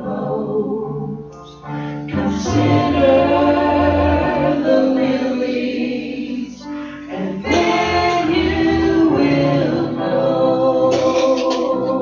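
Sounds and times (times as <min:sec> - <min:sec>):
man and woman singing worship song: 0:01.8 - 0:12.0.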